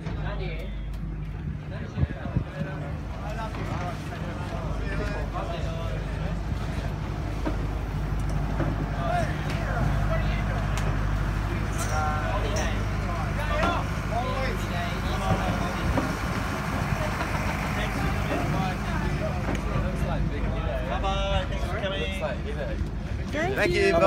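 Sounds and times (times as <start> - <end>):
boat engines idling: 0.6 - 24.0
people talking: 1.6 - 24.0.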